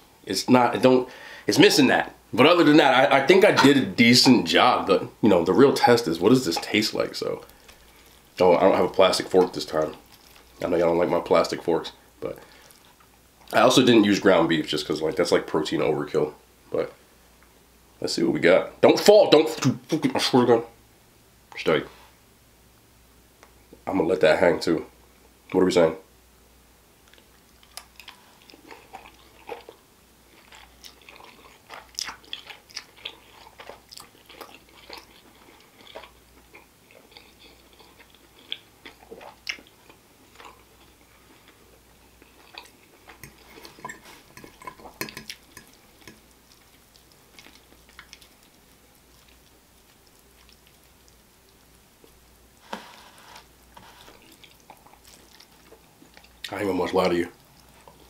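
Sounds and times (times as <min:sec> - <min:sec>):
close chewing mouth smacks: 0:42.2 - 0:51.6, 0:54.2 - 0:56.5.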